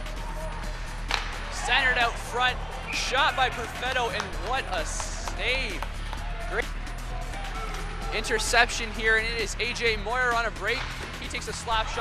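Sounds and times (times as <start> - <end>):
background music with low bass: 0.0 - 12.0
sports commentator speaking: 1.4 - 6.7, 8.1 - 12.0.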